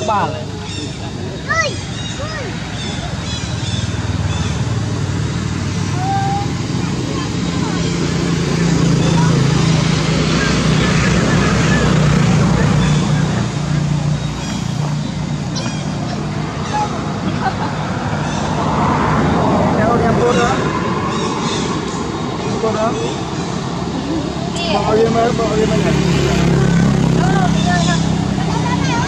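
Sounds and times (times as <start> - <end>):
indistinct voices: 0.0 - 29.0
vehicle engine running: 0.0 - 29.0.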